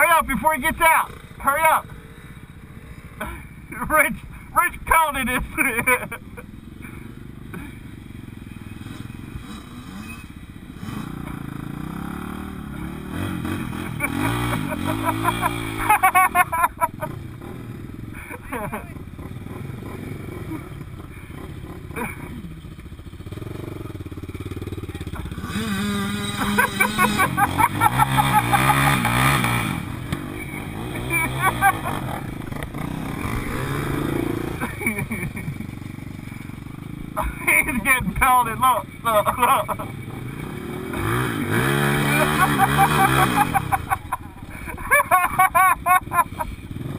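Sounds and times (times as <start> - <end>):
dirt bike engines idling and revving: 0.0 - 46.9.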